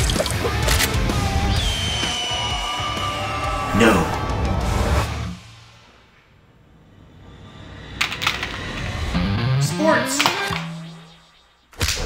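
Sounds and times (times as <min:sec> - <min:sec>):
loud music: 0:00.1 - 0:05.5, 0:09.1 - 0:11.3.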